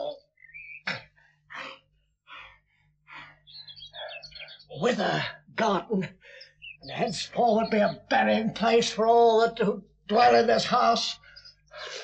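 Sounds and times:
man gasping for breath: 0:06.2 - 0:06.6, 0:11.2 - 0:12.0.

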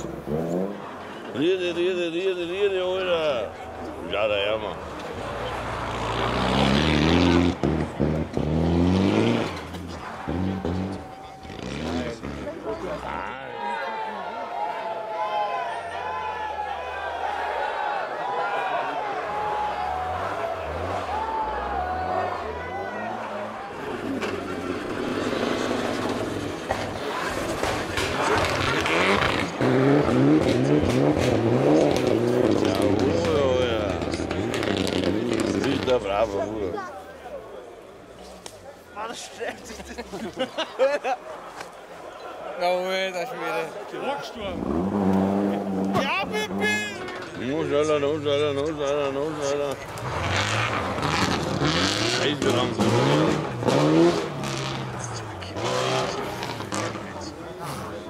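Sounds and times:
tyres rushing on snow: 0:00.0 - 0:58.0
rally car engine revving past: 0:05.3 - 0:12.7, 0:23.2 - 0:36.4, 0:44.5 - 0:47.4, 0:49.3 - 0:58.0.

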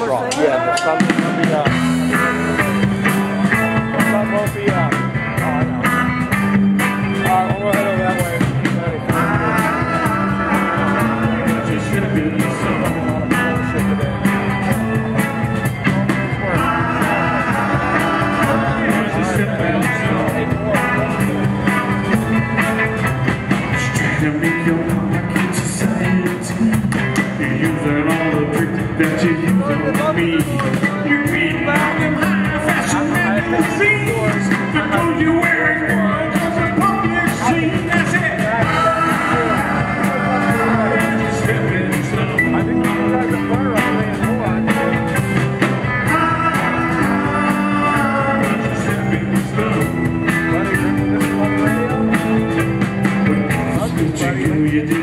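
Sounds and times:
live rock band playing: 0:00.0 - 0:55.0.

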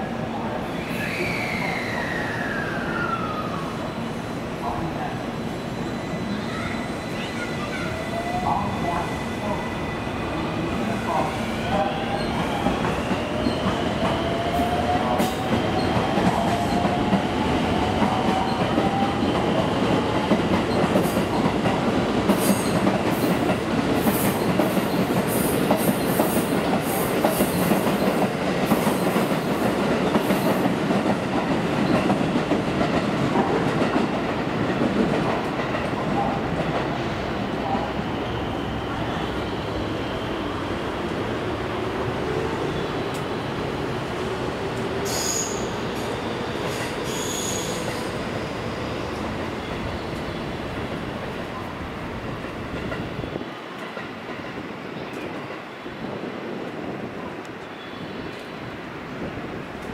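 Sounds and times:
rumble of wheels on rail: 0:00.0 - 0:59.9.

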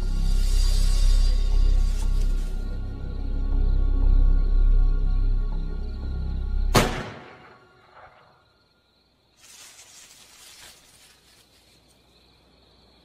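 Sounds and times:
low droning music: 0:00.0 - 0:08.4
soft rustling noise: 0:09.3 - 0:12.2.

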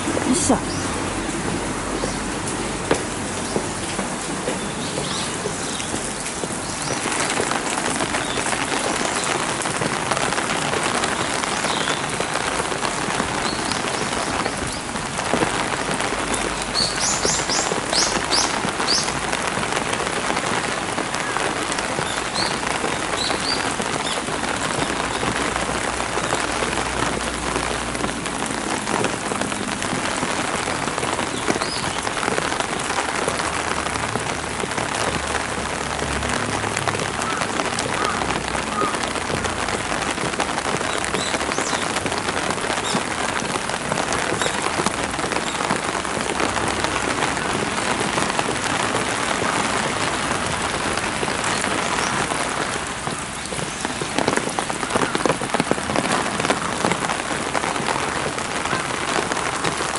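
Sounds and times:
rain on stone and gravel: 0:00.0 - 0:59.9.

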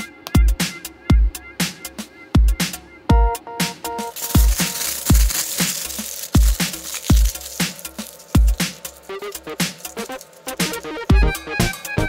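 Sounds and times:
electronic music with kick drum: 0:00.0 - 0:05.4, 0:06.1 - 0:12.0.

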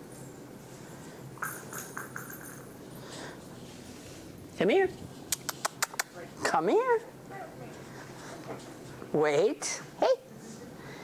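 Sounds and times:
collar jingling: 0:01.4 - 0:03.2
puppy claws clicking on concrete: 0:05.3 - 0:06.2.

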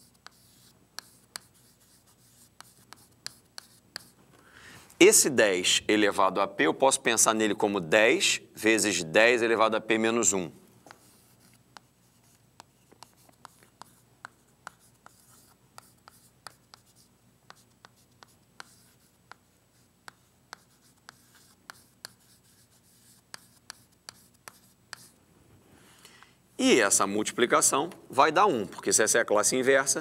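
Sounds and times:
chalk tapping and scratching: 0:00.0 - 0:04.2, 0:10.9 - 0:25.2.

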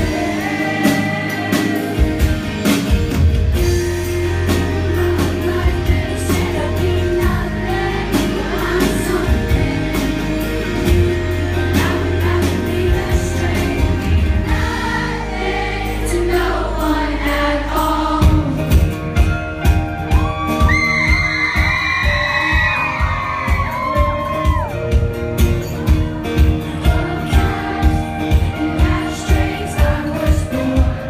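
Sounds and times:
amplified singing: 0:00.0 - 0:02.9, 0:04.2 - 0:19.0, 0:26.6 - 0:31.0
steady drum beat: 0:00.0 - 0:15.8, 0:18.2 - 0:31.0
bass and guitars: 0:00.0 - 0:31.0
high held lead guitar: 0:00.0 - 0:31.0.

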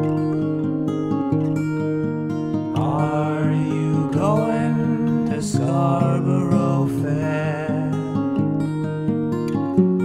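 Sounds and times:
acoustic guitar: 0:00.0 - 0:10.0
man singing: 0:02.8 - 0:08.4.

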